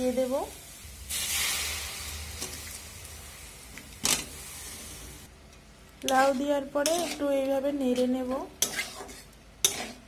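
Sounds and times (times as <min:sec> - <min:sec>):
food sizzling in a pan: 0:00.0 - 0:05.3, 0:06.1 - 0:10.0.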